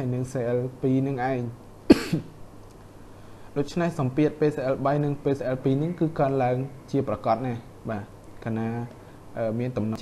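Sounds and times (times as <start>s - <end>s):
person speaking: 0.0s - 2.4s, 3.5s - 10.0s
person coughing: 1.9s - 2.3s.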